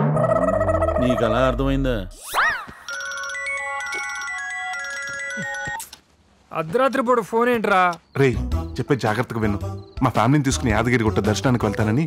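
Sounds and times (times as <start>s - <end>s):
electronic phone ringtone melody: 2.9s - 5.8s.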